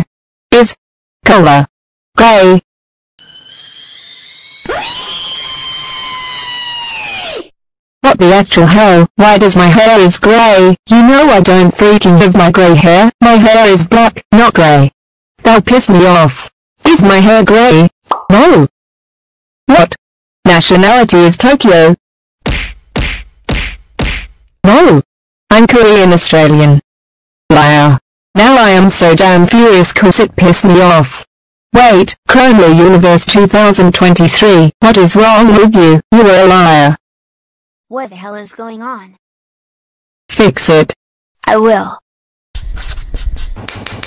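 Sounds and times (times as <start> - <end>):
high whine sweeping in pitch: 3.2 - 7.5
cartoon whack hits: 22.4 - 24.4.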